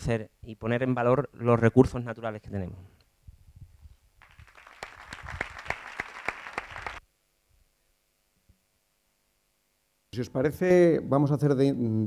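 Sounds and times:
audience applauding: 0:04.2 - 0:07.0.

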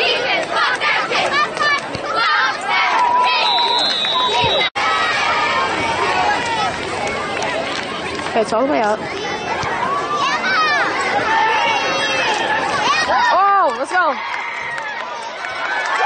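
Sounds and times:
crowd shouting and talking: 0:00.0 - 0:16.0
referee's whistle blast: 0:03.2 - 0:04.7.

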